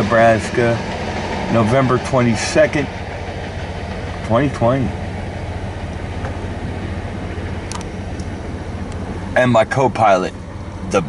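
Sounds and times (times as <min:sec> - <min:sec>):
freight train rolling past: 0:00.0 - 0:11.0
vehicle engine idling: 0:00.0 - 0:11.0.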